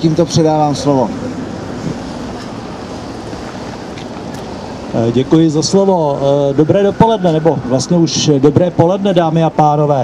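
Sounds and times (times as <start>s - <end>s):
outdoor hiss and rumble: 0.0s - 10.0s.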